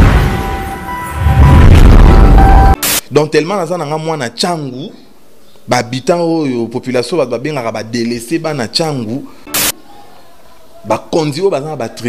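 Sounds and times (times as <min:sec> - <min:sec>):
deep boom rumble: 0:00.0 - 0:02.8
burst of hiss: 0:09.5 - 0:09.8.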